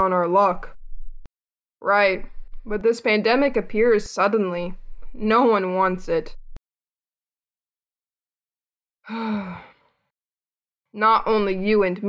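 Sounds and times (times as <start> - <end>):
person sighing: 9.1 - 9.8.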